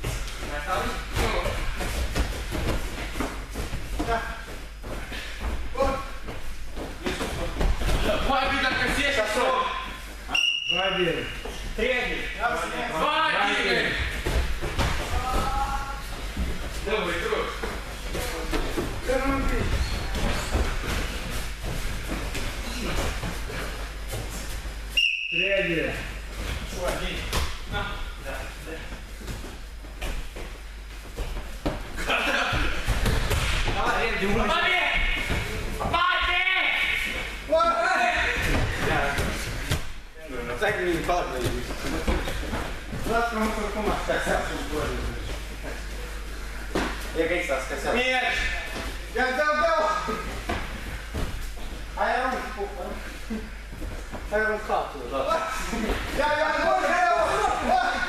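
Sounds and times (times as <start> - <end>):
voices calling out in hall: 33.7 - 40.4.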